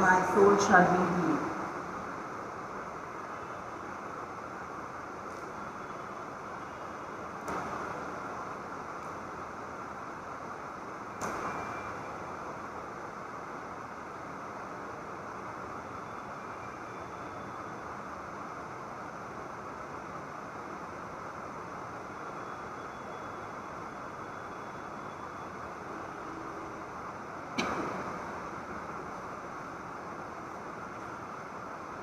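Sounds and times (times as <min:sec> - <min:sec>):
room noise: 0:00.0 - 0:32.0.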